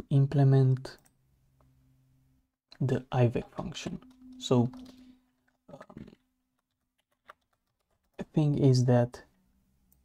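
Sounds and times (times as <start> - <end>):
computer keyboard keystrokes: 6.6 - 8.2.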